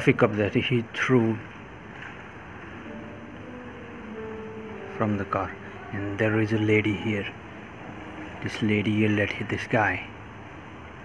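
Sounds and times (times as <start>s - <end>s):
faint low hums: 0.0s - 11.0s.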